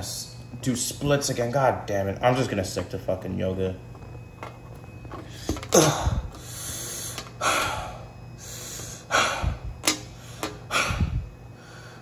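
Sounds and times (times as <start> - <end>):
man breathing hard: 5.2 - 12.0.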